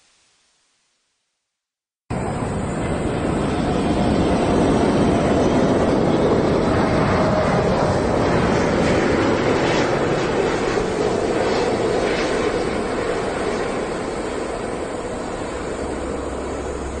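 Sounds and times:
airliner jet engines: 2.1 - 17.0.

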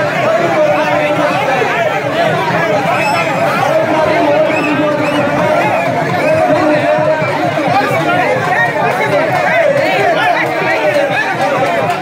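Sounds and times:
dense crowd talking and calling: 0.0 - 12.0.

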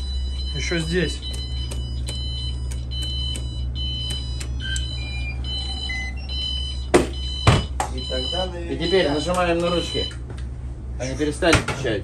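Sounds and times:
high electronic alarm beeps: 0.0 - 10.2
low machinery hum: 0.0 - 12.0.

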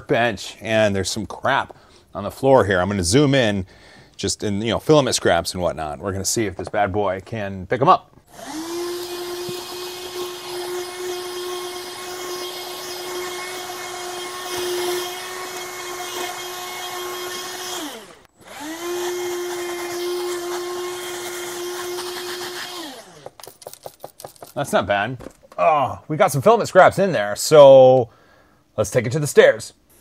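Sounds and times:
handheld vacuum cleaner motor: 8.3 - 24.6.

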